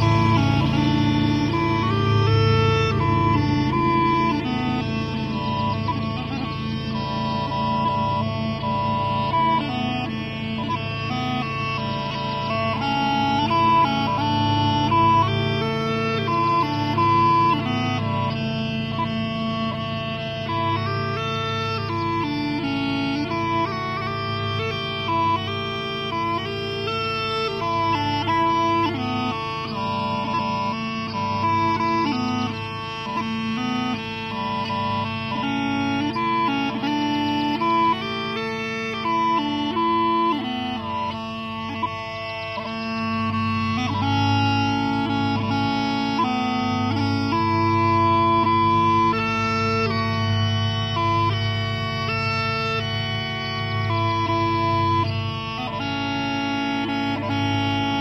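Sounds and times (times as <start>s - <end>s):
smallpipes playing a tune: 0.0s - 58.0s.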